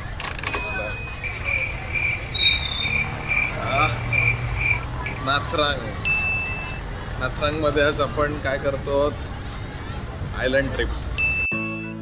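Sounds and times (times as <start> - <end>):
insect chirping: 1.2 - 5.2.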